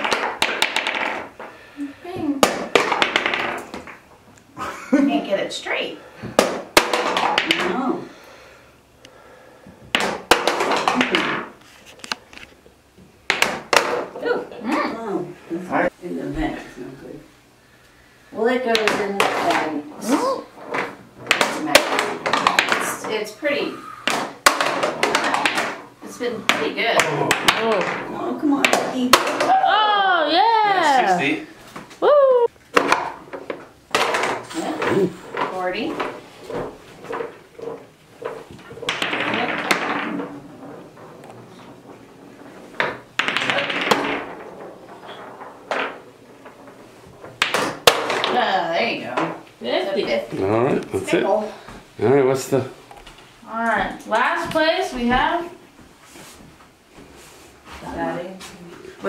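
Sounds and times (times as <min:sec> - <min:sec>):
small balls clacking on plastic board: 0:00.0 - 0:01.7, 0:02.4 - 0:04.1, 0:06.3 - 0:07.9, 0:09.9 - 0:12.5, 0:13.2 - 0:14.2, 0:18.6 - 0:30.0, 0:32.6 - 0:50.3
rising and falling woo: 0:32.0 - 0:32.5
ball knocking against game table: 0:32.7 - 0:48.4.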